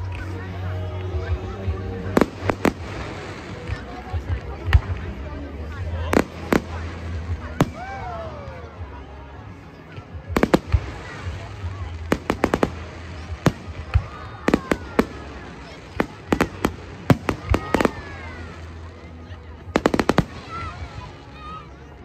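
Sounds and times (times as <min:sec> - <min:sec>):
fireworks bangs and crackles: 0:00.0 - 0:22.0.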